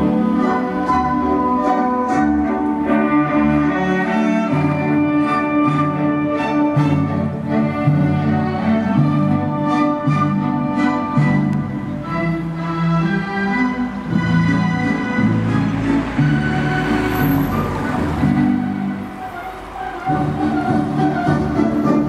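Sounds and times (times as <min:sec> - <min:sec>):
orchestral string music: 0:00.0 - 0:22.0.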